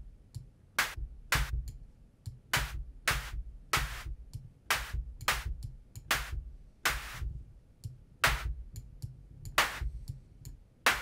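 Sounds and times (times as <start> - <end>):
synthesized snare hits: 0.8 - 1.6, 2.5 - 7.3, 8.2 - 8.6.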